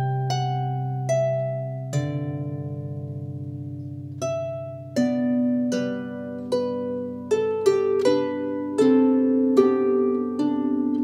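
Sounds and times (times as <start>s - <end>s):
harp chord ringing: 0.0s - 11.0s.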